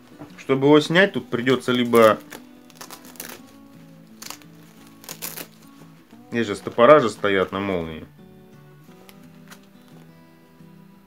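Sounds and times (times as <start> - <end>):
cloth rustling: 0.0 - 8.0, 8.8 - 10.2
plastic zipper being tugged: 1.8 - 5.8.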